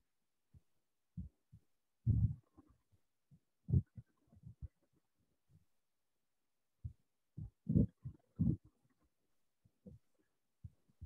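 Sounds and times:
low muffled thumps: 2.1 - 2.4.

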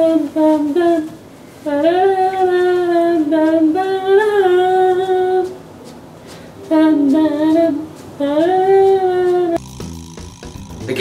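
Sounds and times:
high voice singing wordless melody: 0.0 - 5.6, 6.6 - 11.0.

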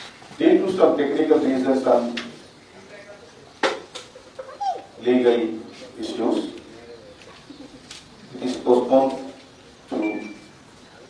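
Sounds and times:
man speaking into a microphone: 0.4 - 3.3, 5.0 - 7.0, 8.3 - 10.3.

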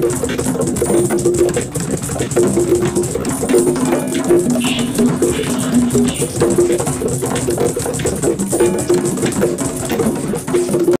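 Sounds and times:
conga drums played by hand: 0.0 - 11.0
music with held low notes: 0.0 - 11.0.

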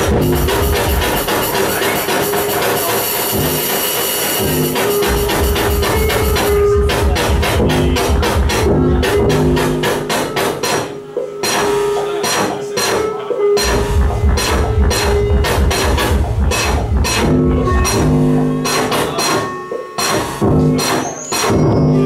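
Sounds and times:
electronic music with steady beat: 0.0 - 22.0.

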